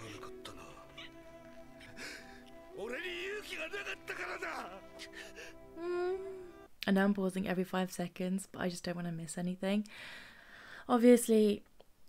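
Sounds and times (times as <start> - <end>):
man sobbing while speaking: 0.0 - 5.6
background music: 0.0 - 7.2
second voice crying: 3.6 - 6.4.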